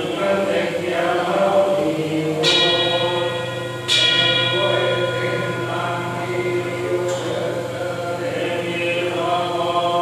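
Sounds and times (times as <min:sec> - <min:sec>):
group chanting: 0:00.0 - 0:03.3
bell struck and ringing: 0:02.4 - 0:08.2.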